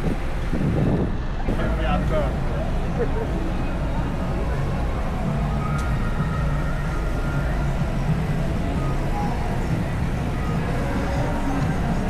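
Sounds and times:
faint voices of passers-by: 0.0s - 12.0s
road traffic rumble: 0.0s - 12.0s.

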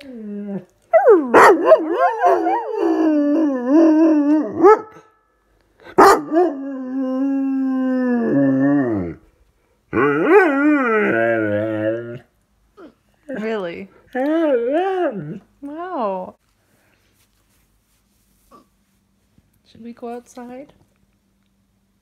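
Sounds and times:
dog howling: 0.0s - 5.0s, 6.0s - 9.2s, 9.9s - 12.2s, 14.2s - 15.4s.

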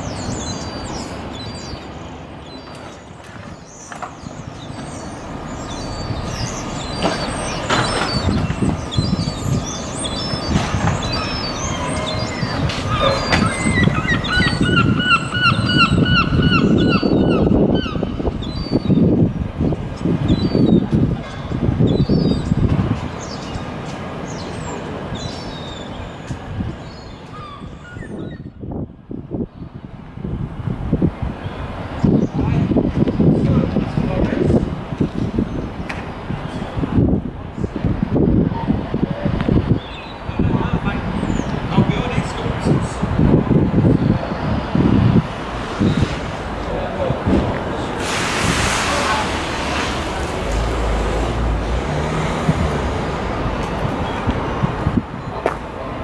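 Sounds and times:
birds chirping: 0.0s - 29.8s, 31.3s - 36.9s, 39.6s - 43.2s
road traffic rumble: 0.0s - 56.0s.

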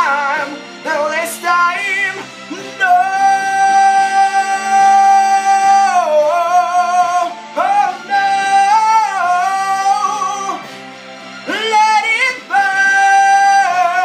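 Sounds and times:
instrumental backing: 0.0s - 14.0s
man singing high held notes: 0.0s - 14.0s.

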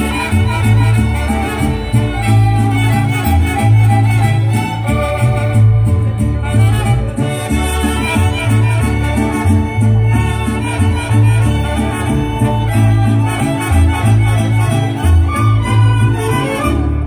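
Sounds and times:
bouncing bass line: 0.0s - 17.0s
strummed guitar chords: 0.0s - 17.0s
violins playing melody: 0.0s - 17.0s.

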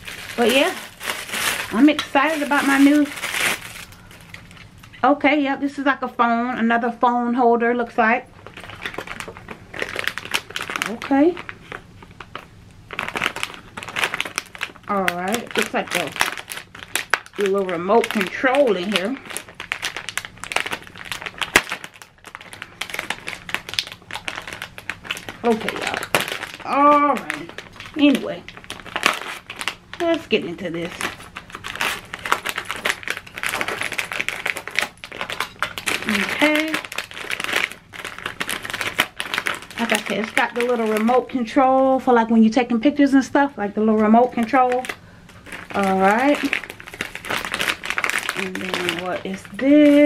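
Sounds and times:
plastic bags crinkling: 0.0s - 5.0s, 7.8s - 50.0s.

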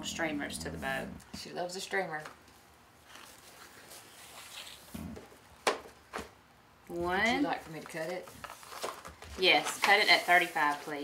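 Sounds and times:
ribbon rustling: 7.4s - 11.0s.

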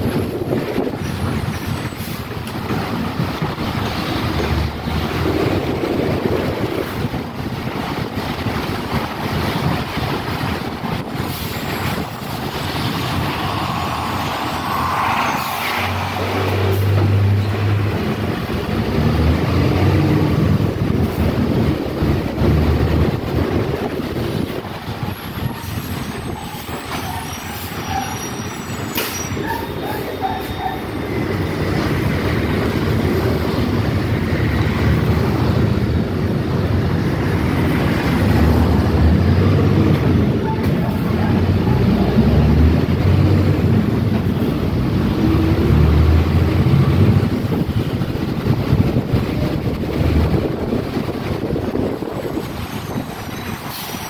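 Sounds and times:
bus engine running: 0.0s - 54.0s
road noise: 0.0s - 54.0s.

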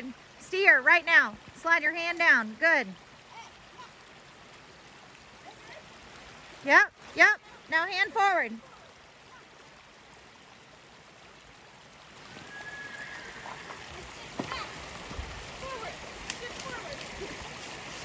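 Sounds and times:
creek running over rocks: 0.0s - 18.0s
hooves splashing on stones: 11.7s - 18.0s.

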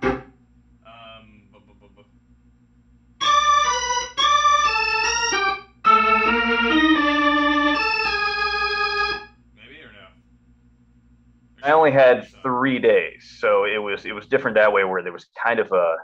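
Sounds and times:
organ playing held chords: 3.2s - 9.3s.

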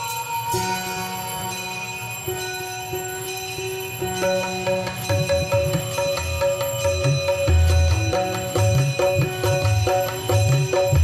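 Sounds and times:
devotional music: 0.0s - 11.0s
temple bells ringing: 0.0s - 11.0s.

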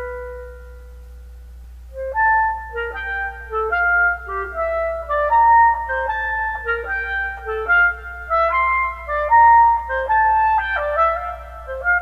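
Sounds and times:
clarinet note: 0.0s - 1.3s, 1.9s - 12.0s
faint low hum: 0.0s - 12.0s.

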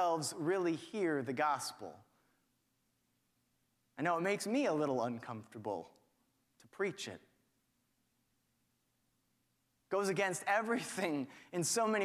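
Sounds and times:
man speaking: 0.0s - 2.1s, 3.9s - 7.4s, 9.9s - 12.0s.

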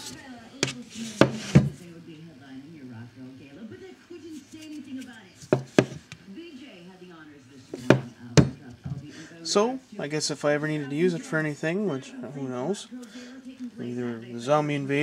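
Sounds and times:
bayonet knocking on wooden bench: 5.5s - 6.0s, 7.8s - 8.6s.

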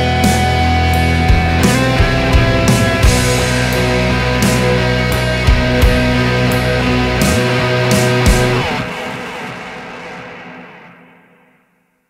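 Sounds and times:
rock guitar chord ringing out: 0.0s - 11.4s.

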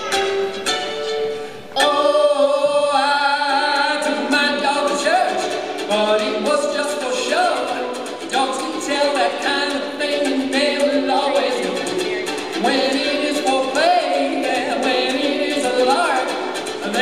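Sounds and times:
strummed ukulele: 0.0s - 17.0s
man and girl singing: 1.8s - 17.0s.

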